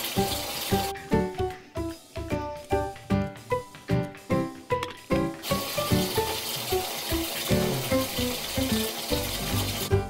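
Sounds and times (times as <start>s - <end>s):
water running into bathtub: 0.0s - 0.9s, 5.4s - 10.0s
background music with plucked notes: 0.0s - 10.0s.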